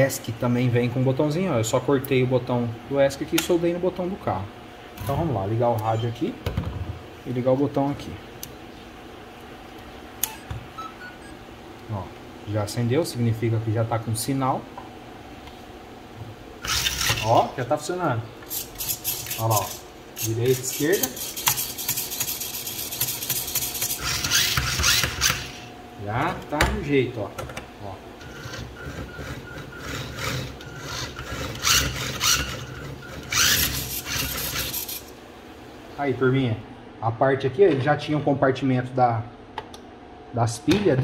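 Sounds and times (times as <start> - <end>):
faint background hum: 0.0 - 41.0
electric motor whirr: 16.6 - 17.3, 21.0 - 25.7, 28.2 - 35.1.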